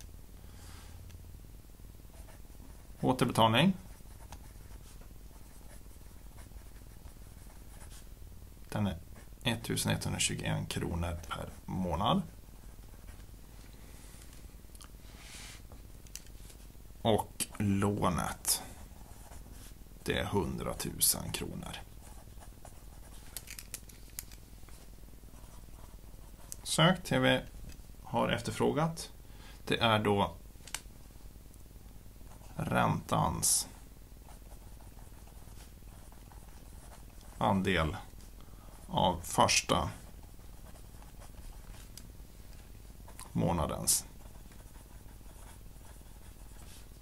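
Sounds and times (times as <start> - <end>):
pen scratching on paper: 34.3 - 37.4, 40.0 - 41.8, 44.1 - 46.9.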